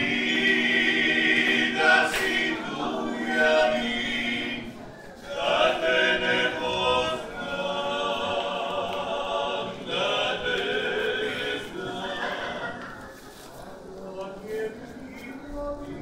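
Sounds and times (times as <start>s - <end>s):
choir singing long notes: 0.0s - 13.5s.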